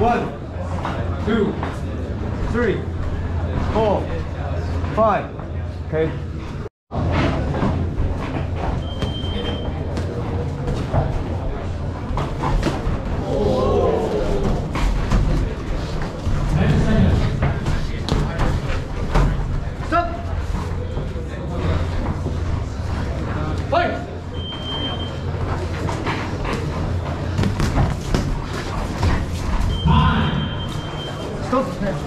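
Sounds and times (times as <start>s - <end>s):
short electronic beep: 8.8s - 9.7s, 29.7s - 31.4s
people shouting: 13.2s - 14.7s, 29.8s - 30.6s.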